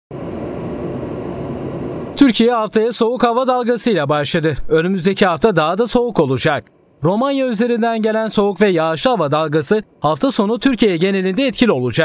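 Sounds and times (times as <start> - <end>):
wind: 0.1 - 12.0.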